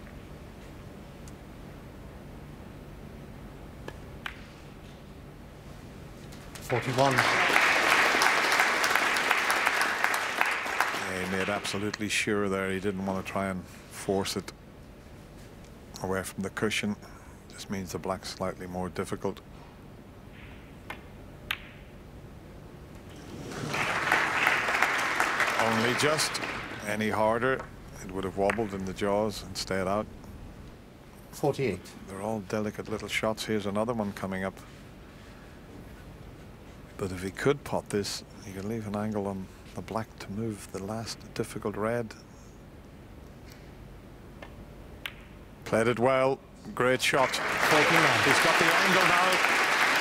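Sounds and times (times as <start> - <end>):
steady low hum: 0.0 - 48.8
audience applauding loudly: 6.6 - 12.0, 23.1 - 27.6, 47.1 - 50.0
cue striking ball click: 20.4 - 21.9
snooker balls clicking: 20.4 - 21.9, 27.0 - 29.0, 44.4 - 45.4.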